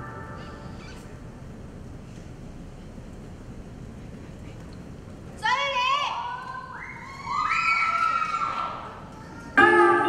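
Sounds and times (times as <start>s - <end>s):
high-pitched cheering shouts: 5.8s - 10.0s.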